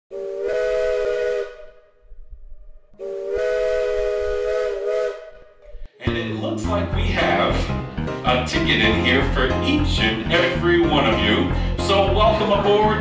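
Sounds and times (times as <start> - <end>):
steam locomotive chime whistle: 0.1 - 1.8, 3.0 - 5.5.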